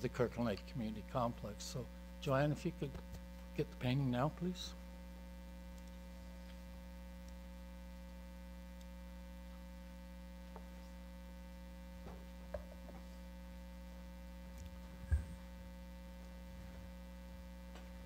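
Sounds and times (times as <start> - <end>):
electrical mains hum: 0.0 - 18.0.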